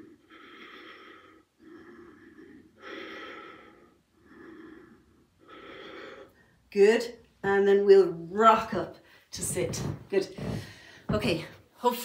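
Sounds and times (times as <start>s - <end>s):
woman breathing with effort: 0.0s - 6.7s, 10.4s - 11.1s.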